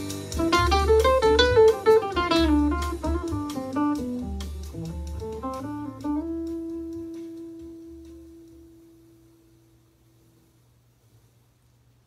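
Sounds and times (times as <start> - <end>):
electric guitar through amplifier: 0.0 - 9.6
low bass part: 0.3 - 9.2.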